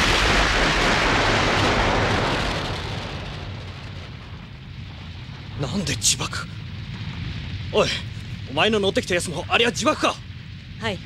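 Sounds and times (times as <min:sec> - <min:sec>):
explosion with deep rumble: 0:00.0 - 0:11.0.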